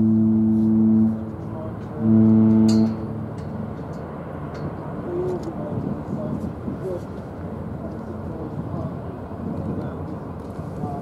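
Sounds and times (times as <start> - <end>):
ship horn blast: 0.0 - 5.5
low harbour rumble: 0.0 - 11.0.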